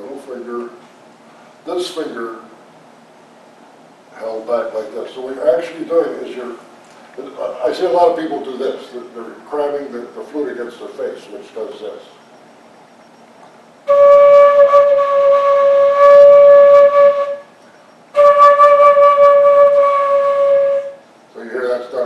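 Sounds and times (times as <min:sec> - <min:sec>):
flute long held note: 0:13.9 - 0:21.0.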